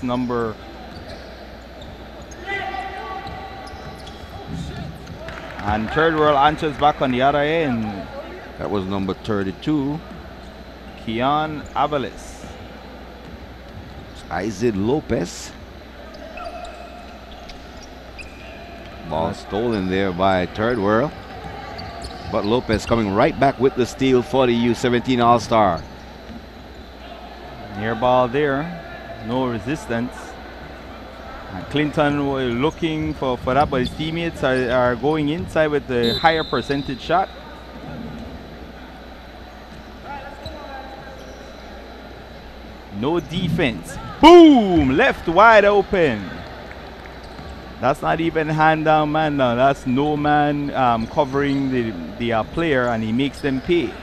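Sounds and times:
shoe squeaks: 0:00.0 - 0:05.2, 0:16.0 - 0:23.7, 0:31.7 - 0:35.4, 0:36.0 - 0:37.7, 0:39.1 - 0:41.9, 0:47.2 - 0:47.6
hall noise: 0:42.8 - 0:54.0
faint distant shout: 0:43.9 - 0:45.2.

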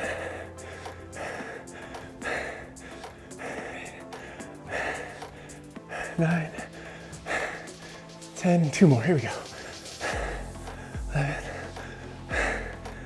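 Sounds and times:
background music: 0:00.0 - 0:13.0
man breathing hard: 0:00.0 - 0:13.0.

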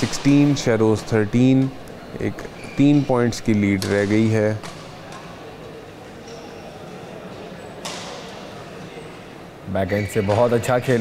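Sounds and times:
murmur of sports hall: 0:00.0 - 0:11.0.

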